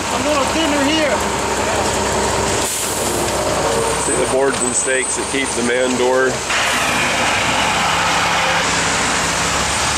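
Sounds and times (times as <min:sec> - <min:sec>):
diesel engine running: 0:00.0 - 0:09.9.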